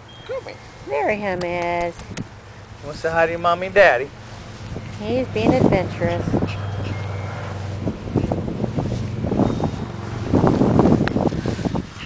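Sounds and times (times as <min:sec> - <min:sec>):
steady low hum: 0:00.0 - 0:12.0
gusty wind on microphone: 0:04.1 - 0:12.0.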